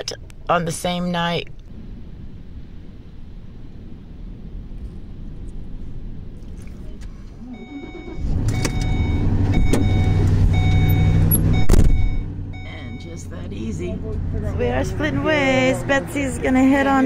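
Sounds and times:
van engine starting and running: 0.0 - 17.0
short beep: 7.4 - 13.3.

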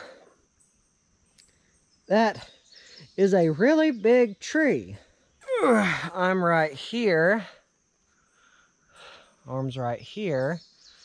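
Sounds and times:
faint click: 1.3 - 1.6.

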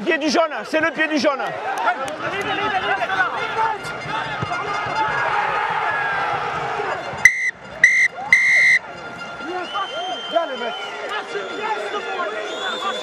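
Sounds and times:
crowd noise: 0.0 - 13.0
referee's whistle blasts: 7.2 - 13.0.

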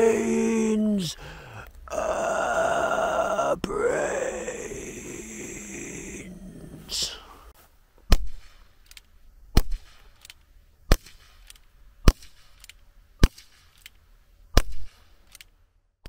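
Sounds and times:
air pistol shots: 9.5 - 10.2, 10.9 - 13.8, 14.5 - 15.2.

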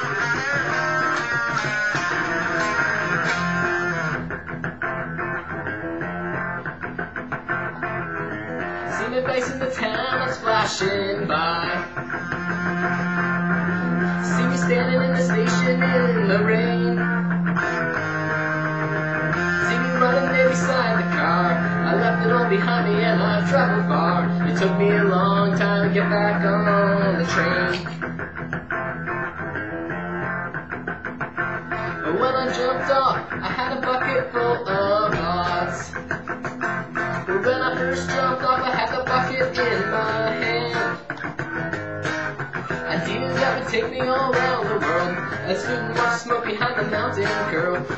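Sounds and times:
vocals: 0.0 - 4.6, 5.2 - 28.5, 31.7 - 47.9
electric guitar playing rock groove: 0.0 - 47.9.

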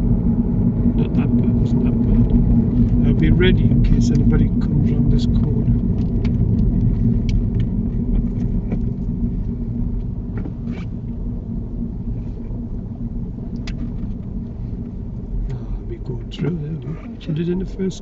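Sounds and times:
car engine from inside cabin: 0.0 - 18.0
road rumble: 0.0 - 18.0.

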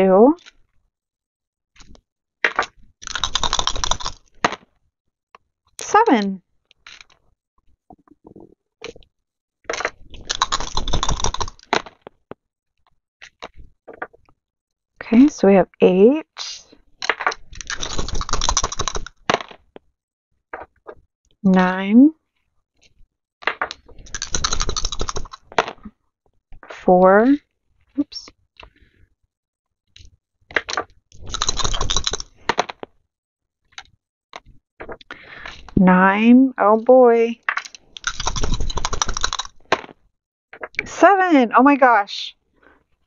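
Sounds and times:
dice rattling and clattering: 2.5 - 4.6, 9.7 - 12.1, 17.0 - 19.6, 23.5 - 25.8, 30.5 - 32.9, 37.5 - 40.0.

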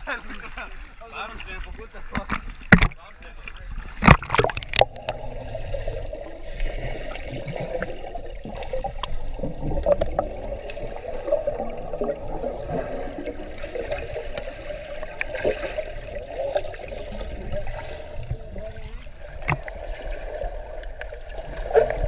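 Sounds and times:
underwater churning and bubbling: 0.0 - 22.0.

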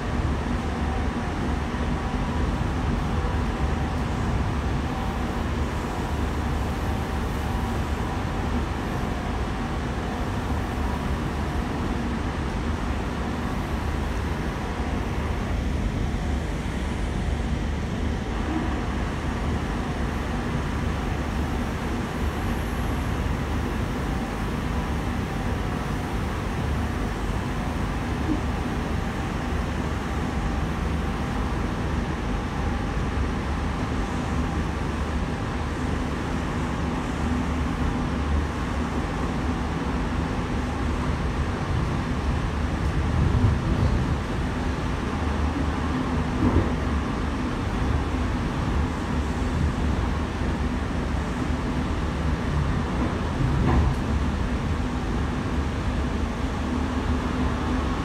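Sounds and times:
train wheels rumbling on rail: 0.0 - 58.0.

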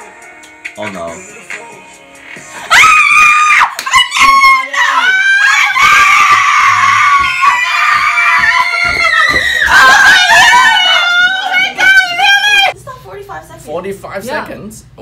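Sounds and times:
young people screaming with joy: 2.7 - 12.7.

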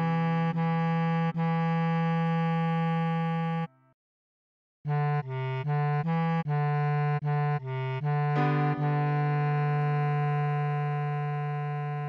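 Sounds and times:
bass clarinet note: 4.9 - 12.0
keyboard chord: 8.3 - 10.5.

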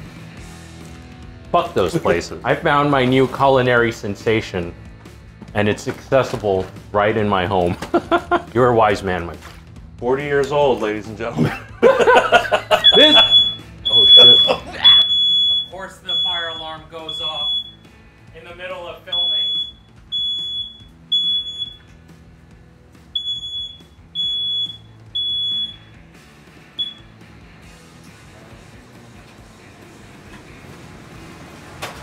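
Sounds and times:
smoke alarm beeping: 12.7 - 17.9, 19.1 - 21.9, 23.1 - 26.1, 26.8 - 27.1.

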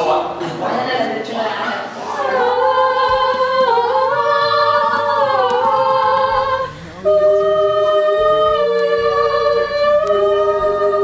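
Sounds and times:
person singing unaccompanied: 2.0 - 11.0.

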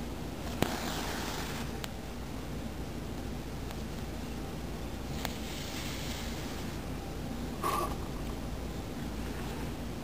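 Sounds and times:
background hiss: 3.1 - 10.0.

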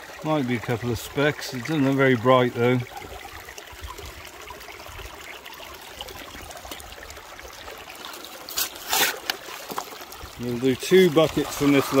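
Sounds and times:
water running through sluice box: 0.0 - 12.0
metal scoop scraping gravel: 8.5 - 9.8, 11.3 - 12.0.

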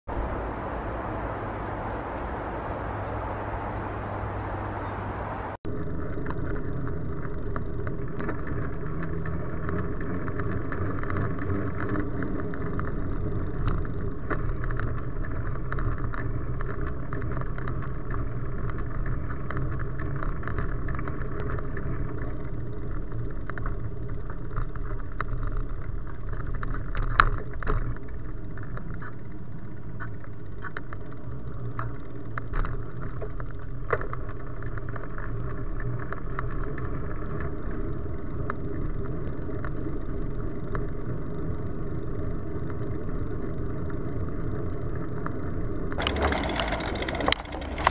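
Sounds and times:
bicycle tyres rolling rumble: 0.1 - 47.9.

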